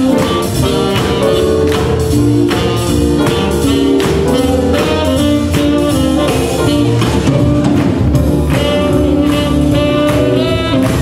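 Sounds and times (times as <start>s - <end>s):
swing band playing: 0.0s - 11.0s.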